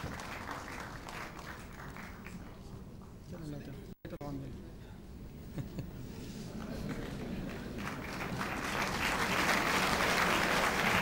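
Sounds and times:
audience applauding: 0.0s - 2.6s, 6.6s - 11.0s.

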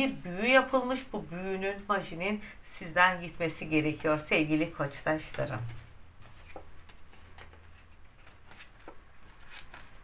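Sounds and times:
cards clicking and rustling: 6.4s - 10.0s.

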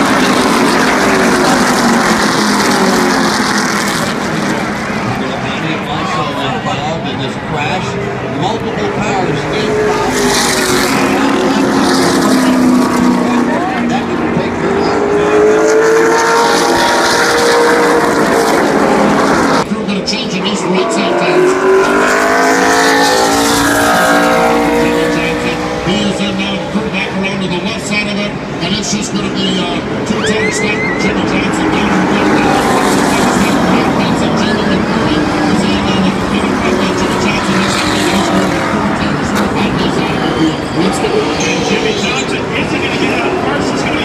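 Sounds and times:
race car engines passing: 0.0s - 44.0s.

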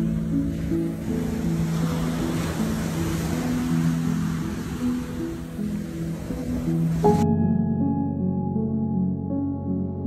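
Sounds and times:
surf breaking on beach: 0.0s - 7.2s
slow ambient music: 0.0s - 10.0s.

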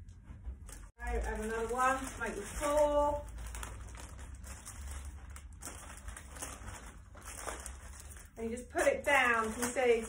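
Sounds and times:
plastic packet crinkling: 1.0s - 10.0s.

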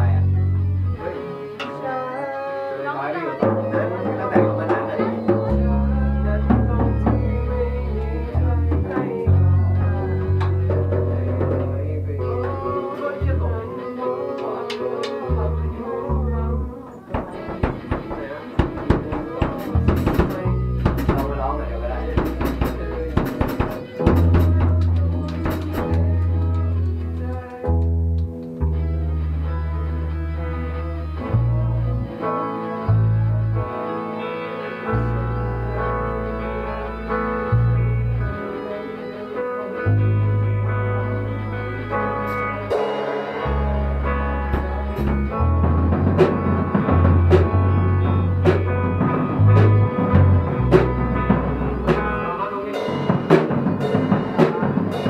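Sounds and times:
bass guitar: 0.0s - 55.0s
electric guitars: 0.0s - 55.0s
drum kit and cymbals: 17.0s - 26.2s, 42.2s - 55.0s.

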